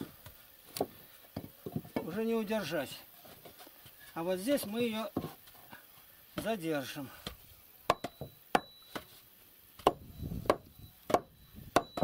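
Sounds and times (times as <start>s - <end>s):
hatchet chopping wood: 7.2s - 9.1s, 9.8s - 12.0s.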